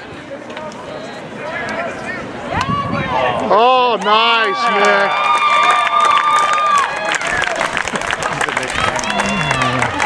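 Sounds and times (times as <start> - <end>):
spectators cheering: 2.4 - 10.0
scattered clapping: 3.9 - 10.0
long drawn-out shouts: 8.6 - 10.0.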